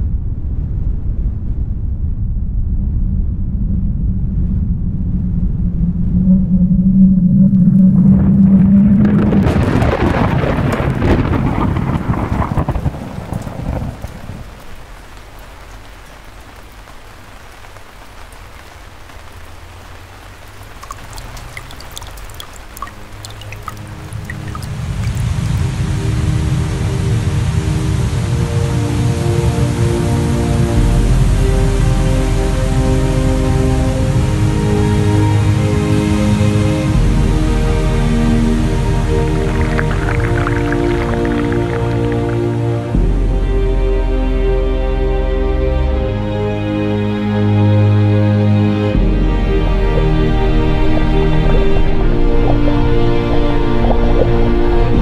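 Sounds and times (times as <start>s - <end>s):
thunder rumbling: 0.0s - 16.8s, 19.2s - 27.8s, 37.0s - 43.4s
steady rain: 7.5s - 55.0s
music with long held notes: 20.4s - 55.0s.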